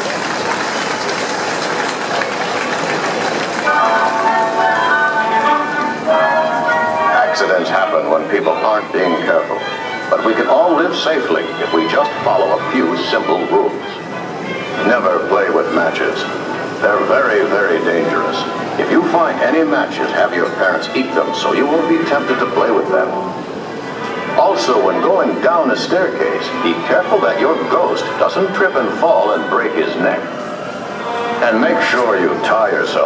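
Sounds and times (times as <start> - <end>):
film soundtrack music: 3.6 - 30.3
voices in soundtrack: 3.6 - 33.0.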